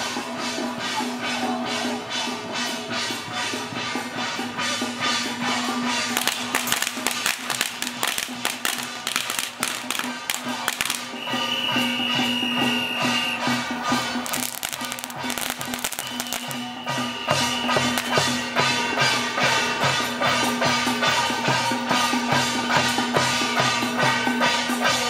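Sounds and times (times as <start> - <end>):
drums: 0.0 - 25.0
hand cymbals clashing: 0.0 - 25.0.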